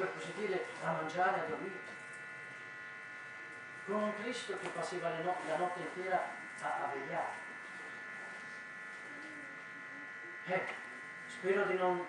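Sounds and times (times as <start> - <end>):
electrical buzz with high tones: 0.0 - 12.0.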